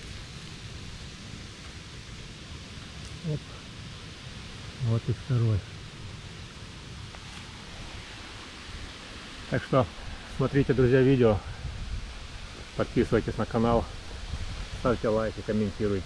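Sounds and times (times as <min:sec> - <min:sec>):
rustling of dry leaves and soil: 0:00.0 - 0:16.0
steady outdoor hiss: 0:00.0 - 0:16.0.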